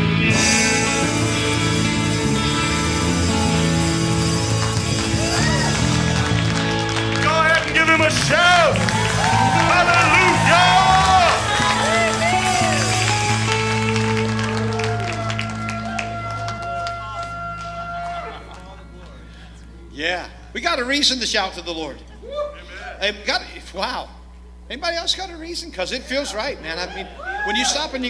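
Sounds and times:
worship band playing: 0:00.0 - 0:21.8
congregation shouting and cheering: 0:04.4 - 0:19.1, 0:26.6 - 0:28.0.

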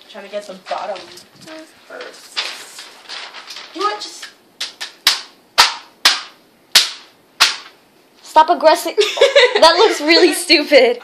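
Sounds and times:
hand slapping paper on wall: 0:02.0 - 0:07.8.

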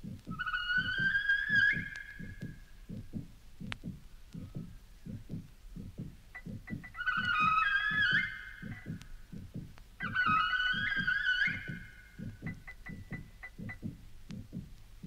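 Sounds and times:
faint high ticks: 0:00.0 - 0:14.9
pulse of low electronic beats: 0:00.0 - 0:15.0
cluster of wavering high tones: 0:06.6 - 0:09.0, 0:10.1 - 0:13.6.

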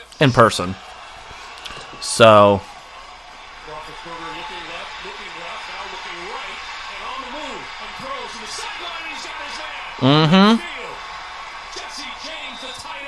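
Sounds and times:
sports commentator talking: 0:00.0 - 0:00.8, 0:02.0 - 0:02.6, 0:03.6 - 0:11.0, 0:11.6 - 0:13.0
people talking in room: 0:00.0 - 0:13.0.

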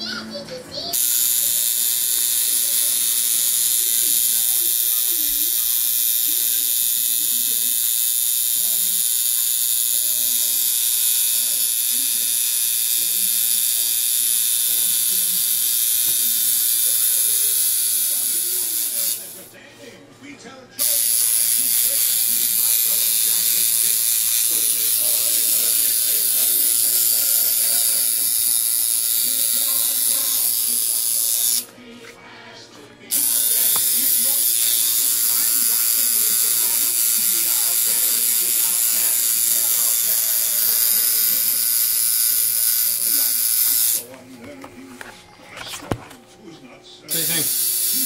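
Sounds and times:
electric tattoo machine running: 0:00.9 - 0:19.5, 0:20.8 - 0:31.7, 0:33.1 - 0:44.1, 0:47.1 - 0:48.0.

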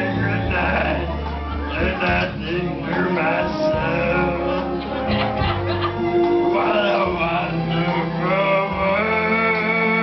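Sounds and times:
man singing karaoke: 0:00.0 - 0:10.0
recorded backing track: 0:00.0 - 0:10.0.

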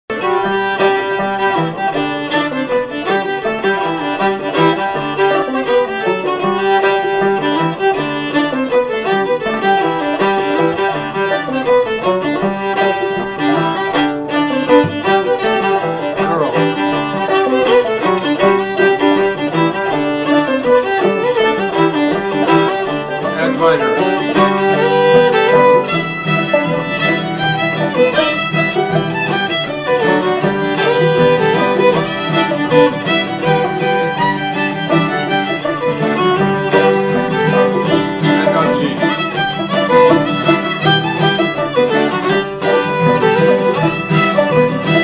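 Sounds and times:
banjo picking: 0:00.1 - 0:45.0
fiddle playing melody: 0:00.1 - 0:45.0.

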